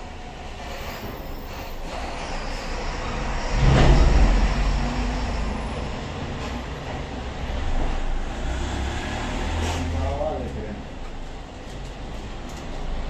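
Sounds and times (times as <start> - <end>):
low rumble: 2.7 - 8.4.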